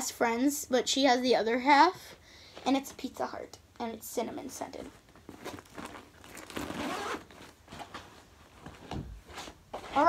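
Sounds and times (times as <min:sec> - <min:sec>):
fabric bag rustling: 0:04.8 - 0:10.0
zipper being pulled: 0:05.3 - 0:07.9.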